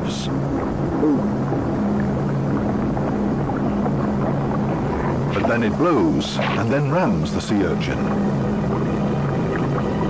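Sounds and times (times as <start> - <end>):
low drone of held notes: 0.0 - 10.0.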